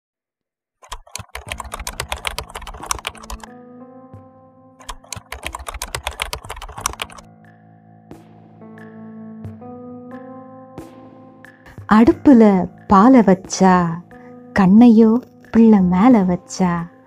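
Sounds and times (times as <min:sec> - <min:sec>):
keyboard typing clicks: 0:00.8 - 0:03.5, 0:04.8 - 0:07.3
soft background music: 0:01.0 - 0:17.0.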